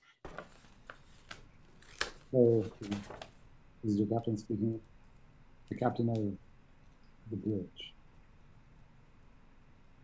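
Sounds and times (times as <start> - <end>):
low hiss: 0.3 - 10.0.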